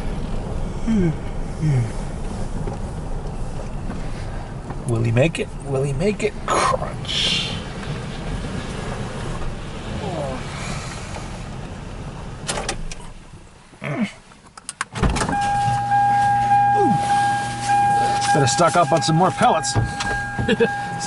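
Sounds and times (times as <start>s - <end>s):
car engine running: 0.0s - 13.8s, 15.2s - 21.0s
low hum: 15.2s - 21.0s
steady electric whine: 15.3s - 21.0s.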